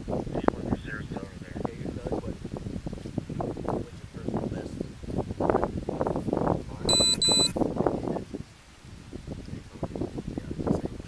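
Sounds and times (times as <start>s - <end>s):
low background talk: 0.4s - 2.4s, 3.3s - 4.9s
high electronic beeps: 6.9s - 7.5s.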